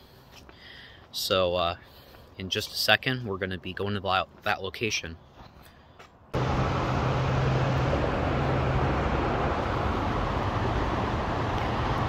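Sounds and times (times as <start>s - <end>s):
road traffic noise: 5.2s - 12.0s.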